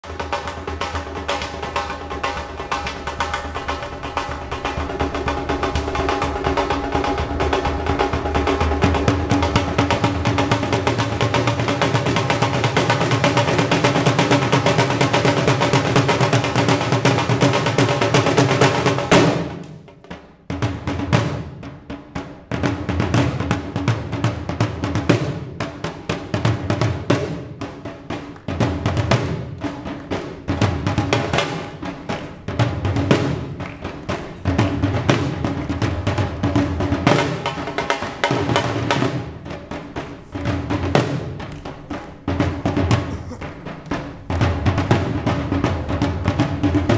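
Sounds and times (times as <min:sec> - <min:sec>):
drums beaten with sticks: 0:00.0 - 0:46.9.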